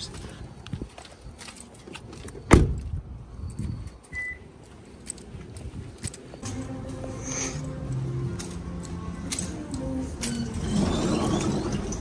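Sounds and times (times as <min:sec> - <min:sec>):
car keys jangling: 0:04.6 - 0:06.6, 0:07.6 - 0:10.6.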